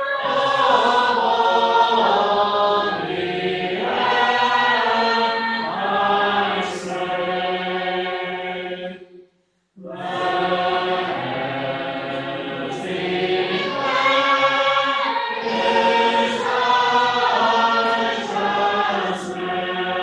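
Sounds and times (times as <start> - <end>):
congregation singing unaccompanied: 0.0 - 9.2, 9.8 - 20.0.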